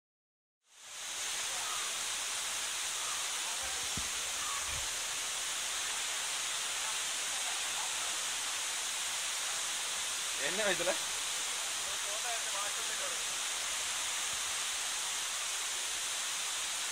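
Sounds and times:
waterfall rushing over rocks: 0:00.7 - 0:16.9.

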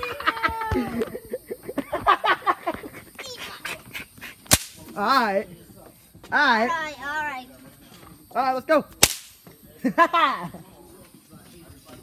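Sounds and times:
person laughing: 0:00.0 - 0:03.2.

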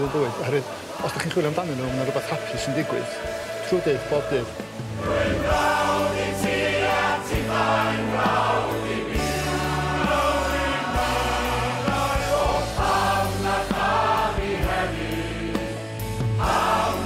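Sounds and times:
choir singing: 0:00.3 - 0:17.0
held bass notes: 0:04.8 - 0:08.6.

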